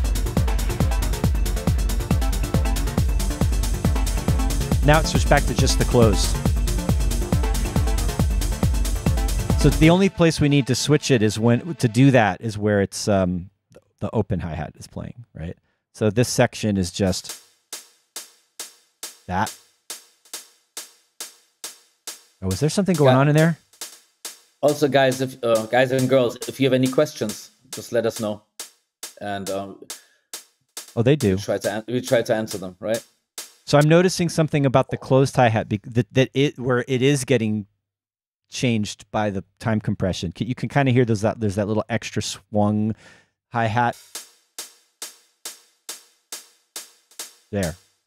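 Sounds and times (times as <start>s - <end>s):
drum machine hi-hat ticks: 0.0s - 10.1s, 17.1s - 35.0s, 43.9s - 48.0s.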